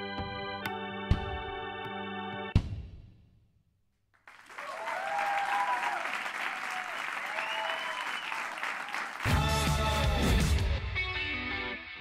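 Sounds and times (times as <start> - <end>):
audience applauding: 4.2 - 9.5
cheers: 4.4 - 9.5
loud music: 9.3 - 11.8.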